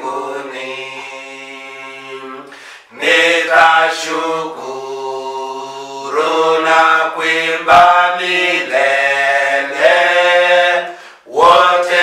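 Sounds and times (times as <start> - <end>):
men singing a hymn: 0.0 - 12.0.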